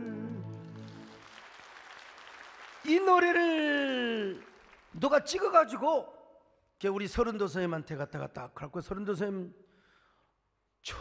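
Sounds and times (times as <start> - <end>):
light applause: 0.0 - 5.4.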